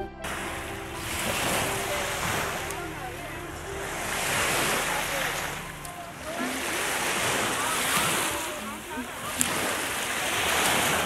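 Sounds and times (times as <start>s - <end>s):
wind buffeting microphone: 0.0s - 11.0s
lake waves washing onto shore: 0.2s - 11.0s.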